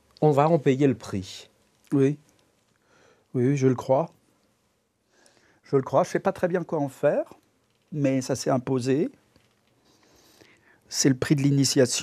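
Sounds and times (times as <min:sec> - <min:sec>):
man speaking: 0:00.2 - 0:02.2, 0:03.3 - 0:04.2, 0:05.6 - 0:09.2, 0:10.9 - 0:12.0
faint breath: 0:02.8 - 0:03.3, 0:05.0 - 0:05.6, 0:09.8 - 0:10.9.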